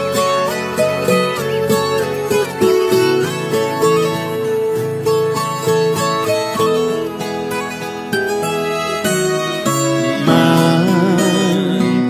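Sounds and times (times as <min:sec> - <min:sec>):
plucked acoustic strings melody: 0:00.0 - 0:12.0.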